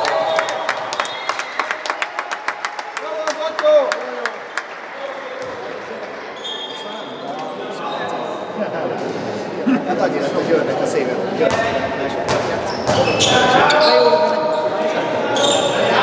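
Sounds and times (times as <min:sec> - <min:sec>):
people clapping in echoing hall: 0:00.0 - 0:05.4.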